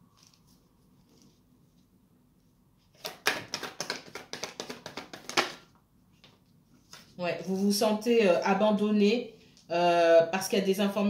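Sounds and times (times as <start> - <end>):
cards being shuffled: 2.9 - 5.6.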